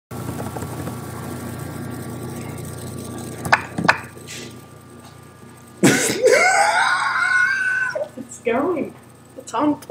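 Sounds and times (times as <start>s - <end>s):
steady low hum: 0.1s - 9.9s
faint steady tones: 0.2s - 9.9s.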